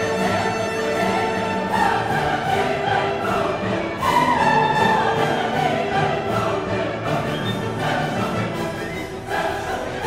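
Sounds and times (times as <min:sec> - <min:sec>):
orchestral music: 0:00.0 - 0:10.0.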